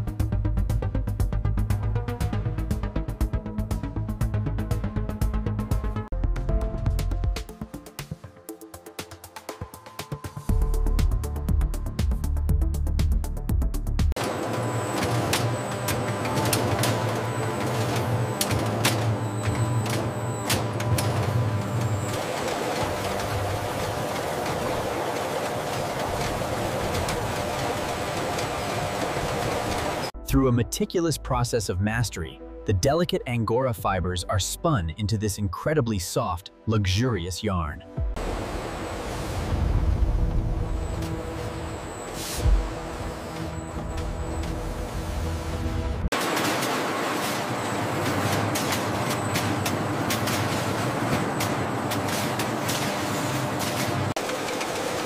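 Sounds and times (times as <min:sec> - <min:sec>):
machinery running: 0:14.2 - 0:32.0, 0:37.1 - 0:55.0.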